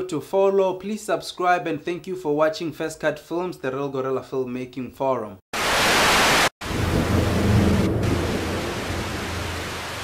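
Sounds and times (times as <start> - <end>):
bright static hiss burst: 5.6 - 6.5
low rumbling static: 5.6 - 10.0.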